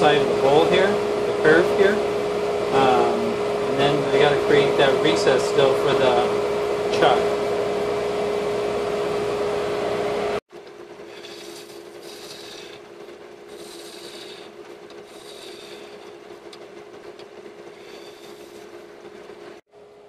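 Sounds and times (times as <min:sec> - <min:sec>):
wood lathe humming: 0:00.0 - 0:19.6
gouge scraping wood: 0:11.1 - 0:12.9, 0:17.6 - 0:18.8.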